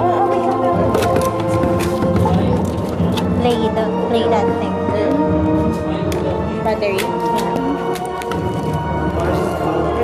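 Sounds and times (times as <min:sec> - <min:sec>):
background music with held tones: 0:00.0 - 0:10.0
indistinct talking: 0:00.0 - 0:10.0.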